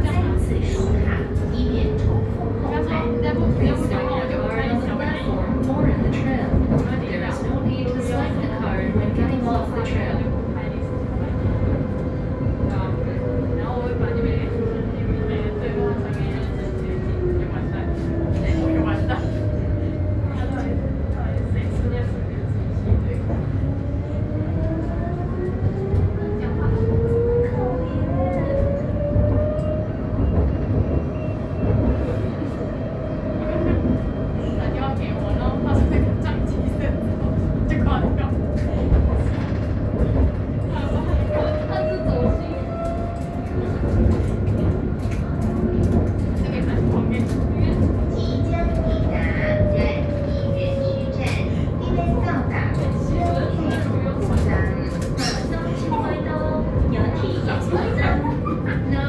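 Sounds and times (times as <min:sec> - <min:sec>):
tram running gear rumble: 0:00.0 - 0:59.0.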